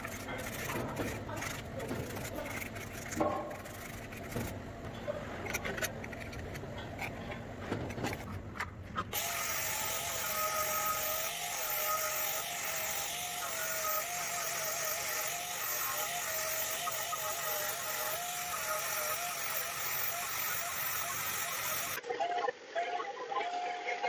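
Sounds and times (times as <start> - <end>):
angle grinder polishing metal: 9.1 - 22.0.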